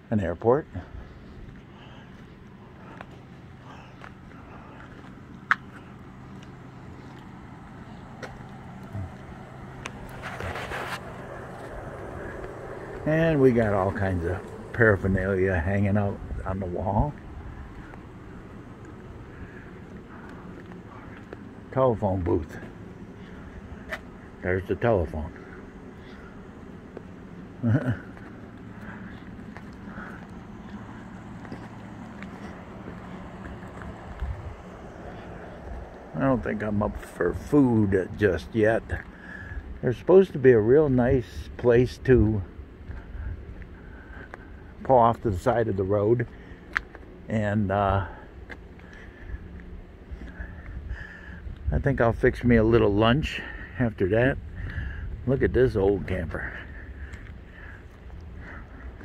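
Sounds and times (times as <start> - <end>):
low motor hum: 0.0 - 59.0
wind noise on microphone: 34.0 - 34.8, 54.3 - 56.2.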